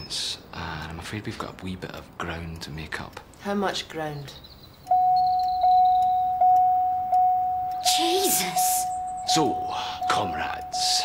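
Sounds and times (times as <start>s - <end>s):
bell-like ding: 4.9s - 11.0s.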